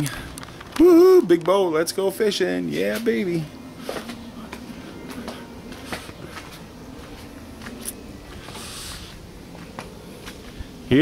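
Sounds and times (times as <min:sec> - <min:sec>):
footsteps on pavement: 0:00.0 - 0:02.1, 0:02.8 - 0:10.8.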